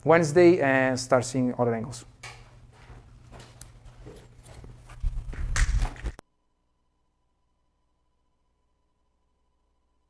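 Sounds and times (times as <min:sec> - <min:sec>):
microphone handling rustles: 0:02.9 - 0:06.2.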